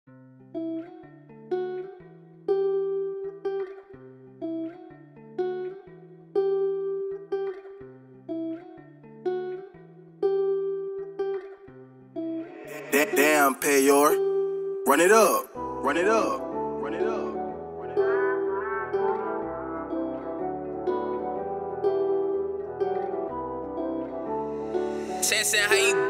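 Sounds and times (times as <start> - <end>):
plucked guitar melody: 0.1 - 26.0.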